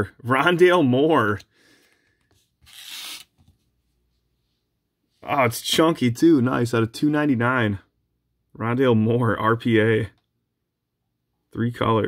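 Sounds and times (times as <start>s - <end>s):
trading cards rustling: 1.8s - 3.6s.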